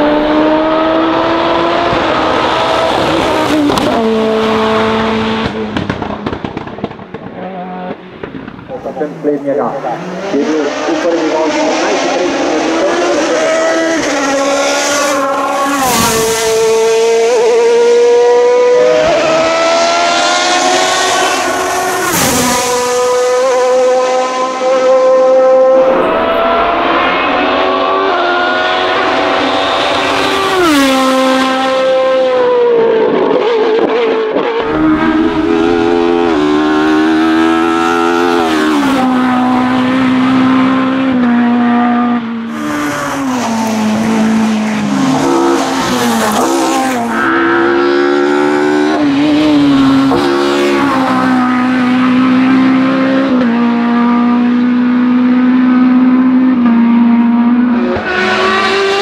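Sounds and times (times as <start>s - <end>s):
race car engines revving: 0.0s - 59.0s.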